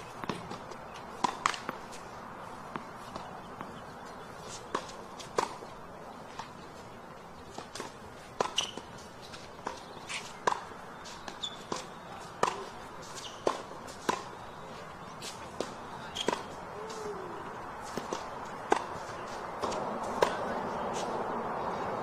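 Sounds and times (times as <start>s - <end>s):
tennis ball struck by rackets: 0.1s - 2.0s, 4.5s - 5.7s, 7.5s - 8.9s, 9.6s - 10.7s, 11.3s - 14.4s, 15.2s - 17.0s, 17.8s - 21.1s
ball bouncing on court: 0.2s - 1.8s.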